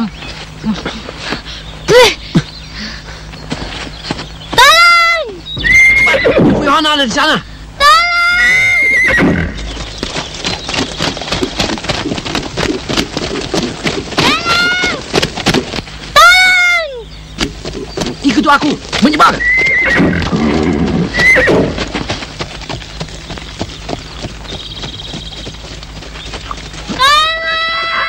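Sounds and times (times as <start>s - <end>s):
rapid hoofbeats: 2.4s - 6.5s, 8.7s - 28.0s
horses neighing loudly: 5.7s - 6.7s, 8.3s - 9.7s, 19.2s - 21.9s.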